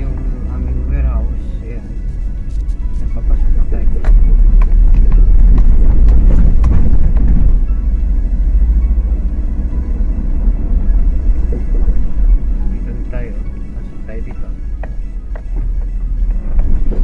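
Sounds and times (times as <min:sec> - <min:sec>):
car cabin rumble: 0:00.0 - 0:17.0
knocks and rattles over rough road: 0:02.4 - 0:17.0.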